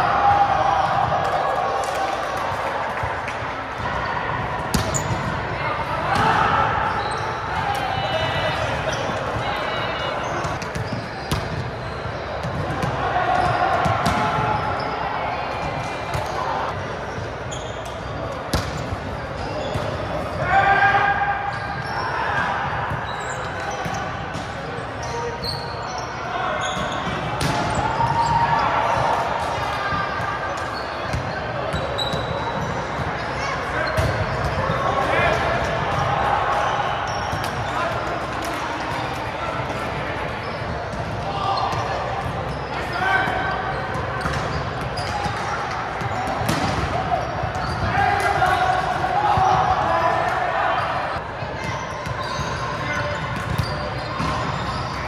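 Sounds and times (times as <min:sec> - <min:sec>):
players' voices and calls: 0:00.0 - 0:55.0
volleyballs bouncing on gym floor: 0:04.5 - 0:05.4, 0:10.2 - 0:14.7, 0:43.3 - 0:49.8, 0:52.0 - 0:54.8.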